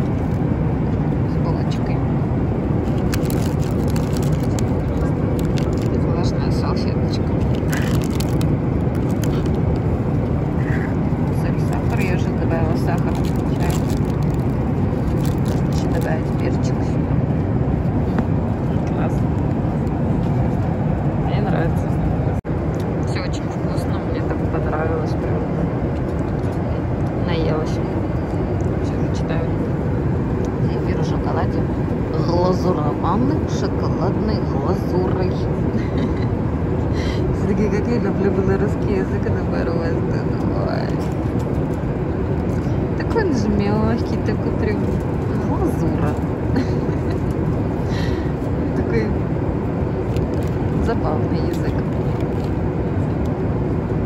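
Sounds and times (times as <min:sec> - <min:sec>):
airliner cabin drone: 0:00.0 - 0:54.0
plastic food wrappers crinkling: 0:02.9 - 0:06.0, 0:07.4 - 0:09.6, 0:12.9 - 0:16.1.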